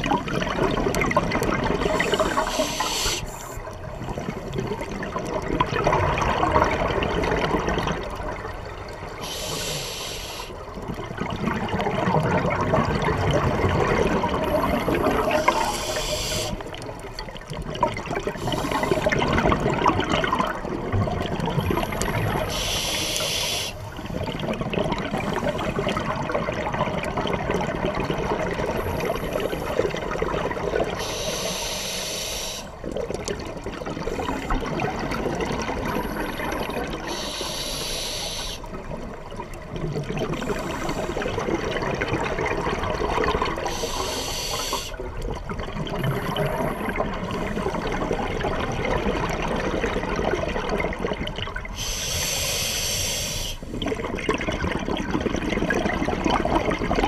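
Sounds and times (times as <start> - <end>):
exhaled bubbles gurgling: 0.0 - 57.0
regulator hissing inhalations: 1.8 - 3.6, 9.2 - 10.6, 15.4 - 16.7, 18.4 - 19.1, 22.4 - 23.9, 31.0 - 32.8, 37.0 - 38.7, 40.4 - 41.2, 43.6 - 45.0, 51.8 - 53.7.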